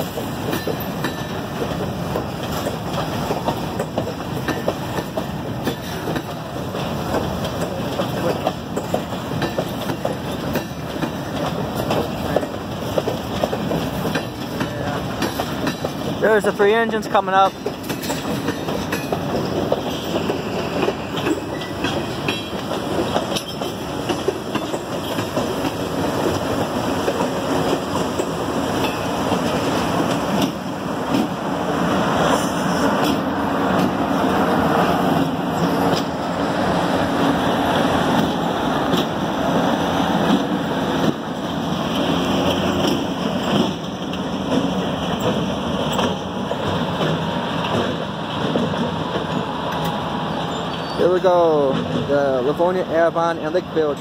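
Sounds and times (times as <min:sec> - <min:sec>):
diesel locomotive engines: 0:00.0 - 0:54.0
train wheels clacking on rails: 0:00.0 - 0:54.0.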